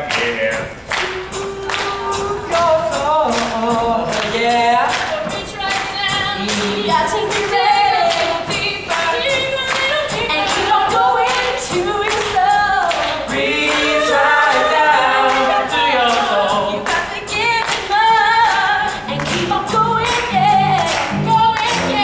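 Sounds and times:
cast singing together: 0:00.0 - 0:22.0
musical accompaniment with beat: 0:00.0 - 0:22.0.

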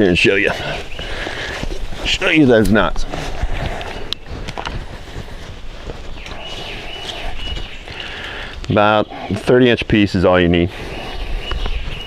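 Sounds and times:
footsteps on leaf litter: 0:00.2 - 0:08.2.

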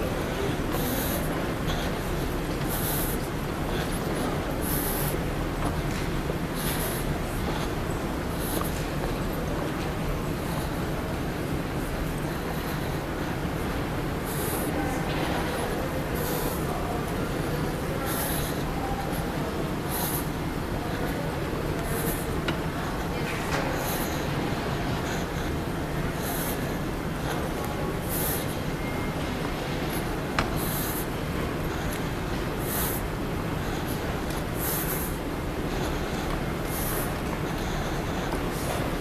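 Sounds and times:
airport concourse ambience: 0:00.0 - 0:39.0
moving walkway rumble and hiss: 0:00.0 - 0:39.0.

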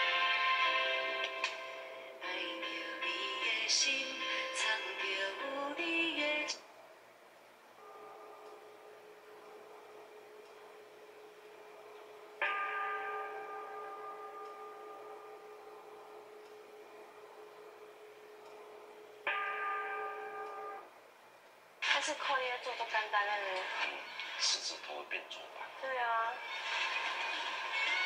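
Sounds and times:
faint ringing tone: 0:07.7 - 0:21.4.

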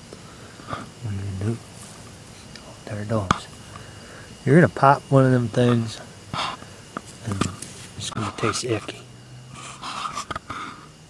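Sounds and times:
breathy huffs: 0:03.6 - 0:04.4.

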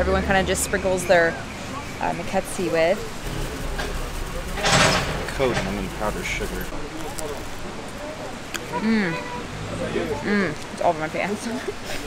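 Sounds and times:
low rumble: 0:03.2 - 0:06.8
plastic bag rustling: 0:03.2 - 0:07.6.

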